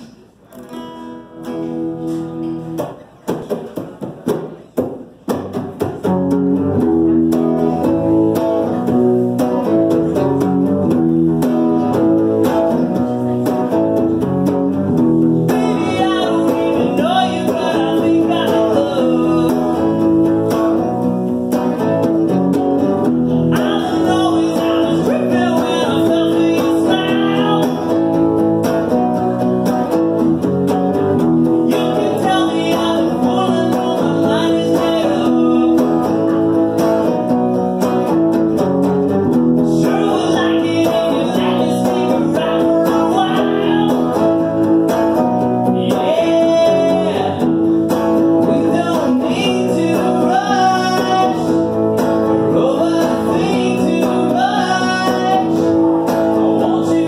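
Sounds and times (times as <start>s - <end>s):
guitar strumming: 0.0s - 57.0s
man singing: 7.3s - 30.0s, 31.4s - 38.2s, 39.3s - 57.0s.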